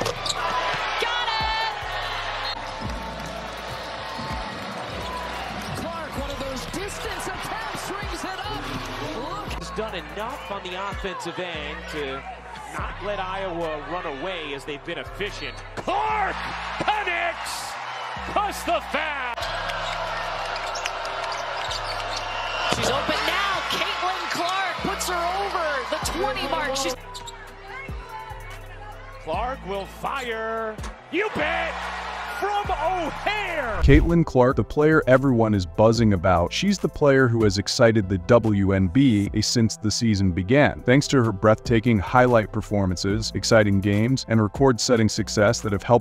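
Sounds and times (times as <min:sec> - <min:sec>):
background music with bass line: 0:00.0 - 0:11.0, 0:24.8 - 0:46.0
arena noise: 0:00.0 - 0:34.2.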